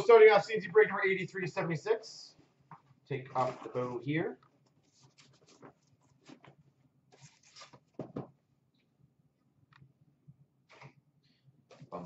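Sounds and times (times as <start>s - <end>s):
ribbon rustling and scraping: 4.8s - 8.2s.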